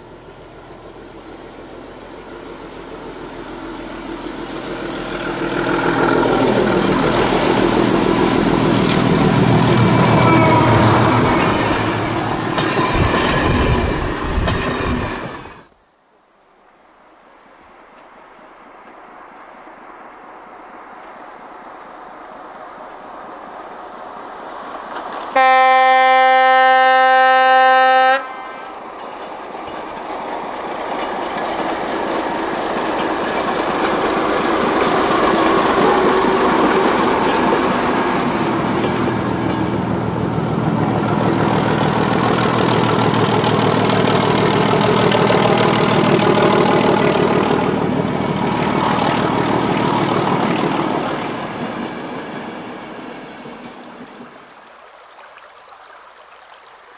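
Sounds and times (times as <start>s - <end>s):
diesel locomotive engine passing: 0.0s - 15.7s, 17.8s - 54.5s
train running: 0.0s - 15.8s, 17.4s - 54.5s
high thin wheel squeal: 8.7s - 15.7s
locomotive horn blast: 9.6s - 12.7s, 25.3s - 28.8s.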